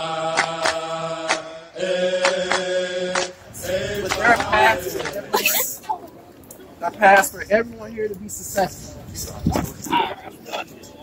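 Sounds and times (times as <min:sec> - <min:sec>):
voices chanting in unison: 0:00.0 - 0:05.6
sharp claps: 0:00.3 - 0:01.5, 0:02.2 - 0:03.4.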